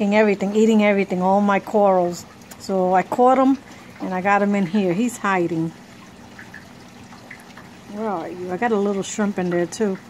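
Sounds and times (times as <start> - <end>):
aquarium water trickling: 0.0 - 10.0
faint steady hum: 0.0 - 10.0.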